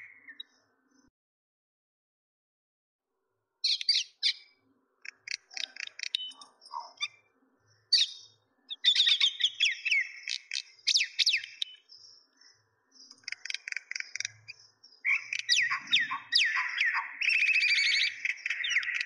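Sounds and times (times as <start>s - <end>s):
small birds chirping: 0.0s - 1.1s, 3.6s - 19.0s.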